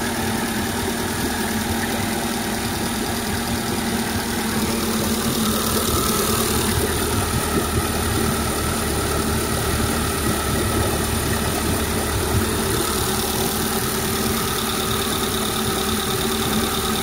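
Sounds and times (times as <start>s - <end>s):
outboard motor running: 0.0s - 17.0s.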